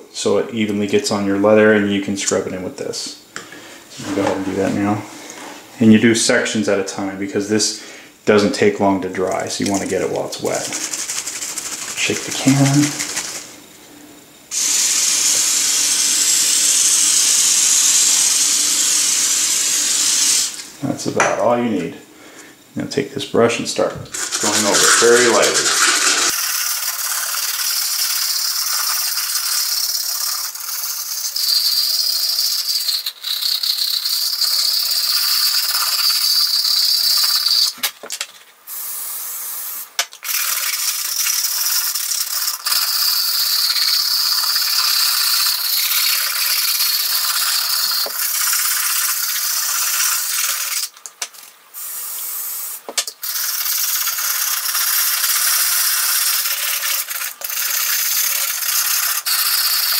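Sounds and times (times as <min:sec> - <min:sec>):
bristles scrubbing suede: 0:24.1 - 0:26.4.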